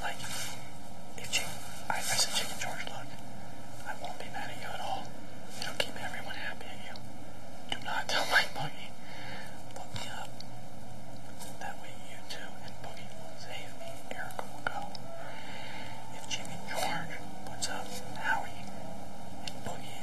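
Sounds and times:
man whispering: 0.0s - 3.2s, 3.8s - 7.1s, 7.7s - 9.0s, 9.6s - 10.4s, 11.4s - 15.1s, 16.1s - 18.7s, 19.4s - 20.0s
steady hiss: 0.0s - 20.0s.

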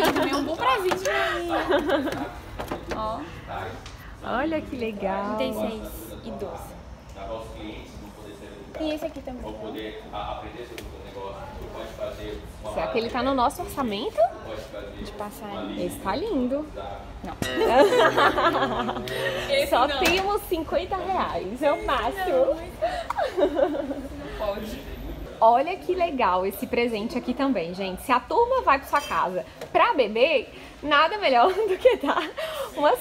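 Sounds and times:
women laughing and chattering: 0.0s - 3.4s, 17.4s - 25.2s, 31.2s - 33.0s.

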